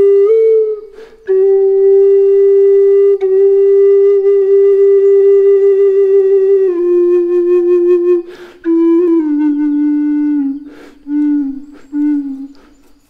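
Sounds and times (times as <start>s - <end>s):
low flute slow held notes: 0.0s - 13.0s
breath sounds: 0.9s - 1.3s, 8.2s - 8.6s, 10.6s - 13.0s.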